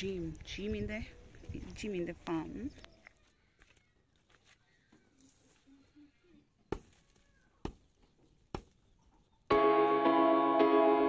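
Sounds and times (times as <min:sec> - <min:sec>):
music with sustained tones: 0:09.5 - 0:11.0.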